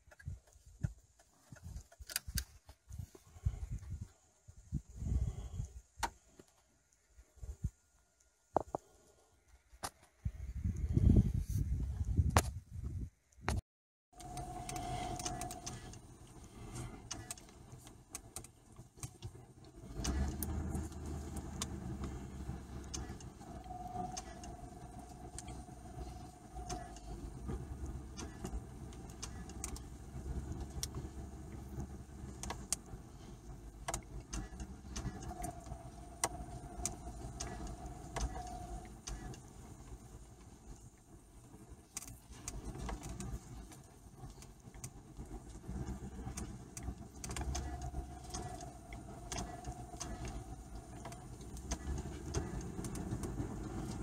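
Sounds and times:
car engine rumbling: 0:14.1 - 0:54.0
faint whine: 0:14.2 - 0:54.0
small clicks: 0:14.2 - 0:54.0.

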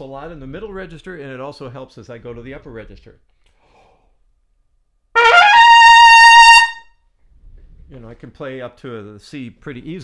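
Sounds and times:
trumpet rising run and high note: 0:05.2 - 0:06.8.

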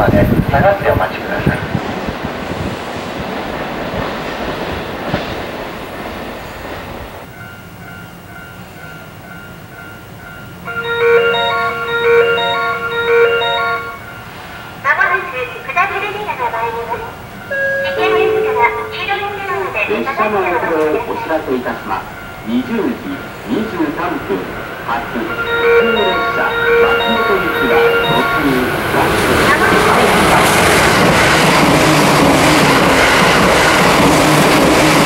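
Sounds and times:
train rolling: 0:00.0 - 0:35.0
station chime: 0:07.4 - 0:14.3, 0:17.4 - 0:29.6
platform announcement over loudspeakers: 0:10.7 - 0:14.0, 0:14.8 - 0:30.8.

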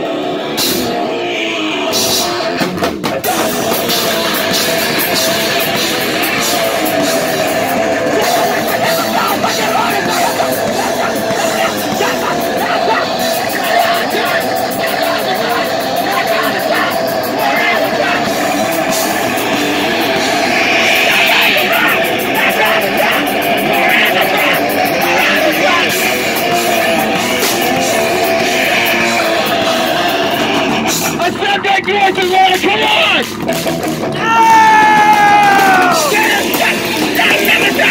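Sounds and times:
distorted electric guitars: 0:00.0 - 0:37.9
electric bass: 0:00.0 - 0:37.9
pounding drum kit: 0:00.6 - 0:01.0, 0:01.9 - 0:37.9.

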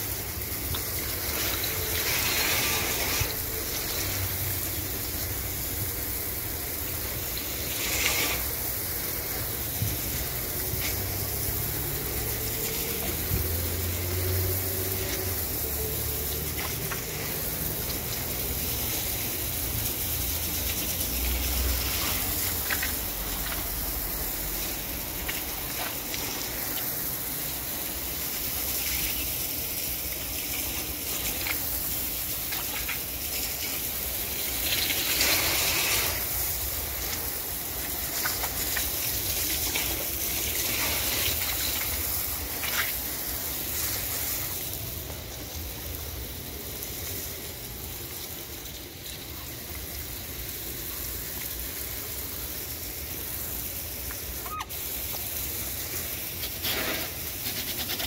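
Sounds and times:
hose spraying water on tiles: 0:00.0 - 0:58.0.

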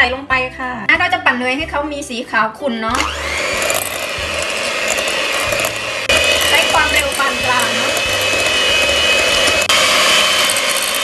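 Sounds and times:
electric hand mixer whine: 0:02.9 - 0:11.0.

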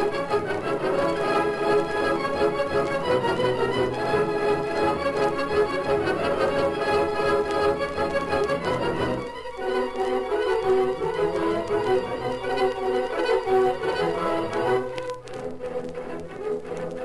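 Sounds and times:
orchestral music with strings: 0:00.0 - 0:17.0.

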